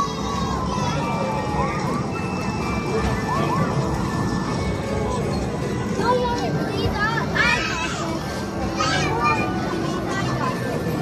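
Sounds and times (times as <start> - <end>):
children calling out: 7.2 - 10.4.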